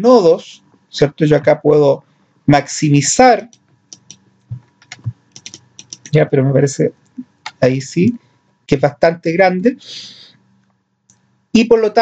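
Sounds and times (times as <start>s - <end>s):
computer keys or mouse clicking: 3.5s - 6.2s, 7.1s - 7.6s.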